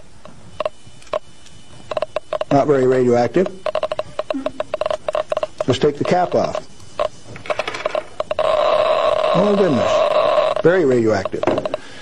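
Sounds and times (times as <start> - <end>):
radiation counter clicks: 0.0 - 12.0.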